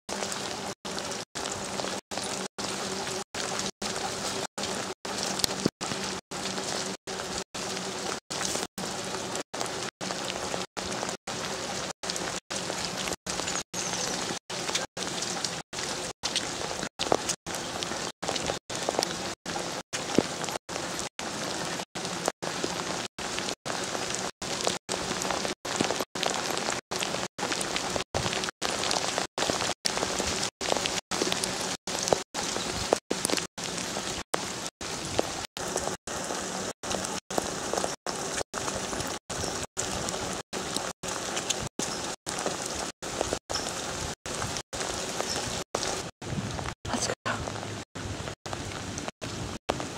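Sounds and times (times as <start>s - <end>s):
rain pattering on pavement: 0.1s - 49.9s.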